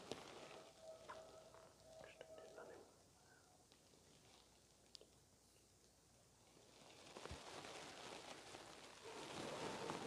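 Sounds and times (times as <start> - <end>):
faint whisper: 1.9 - 3.6.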